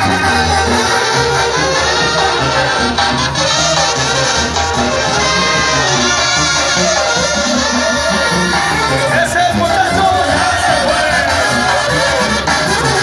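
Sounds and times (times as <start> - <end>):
brass band music: 0.0 - 13.0
repeating low bass line: 0.0 - 13.0.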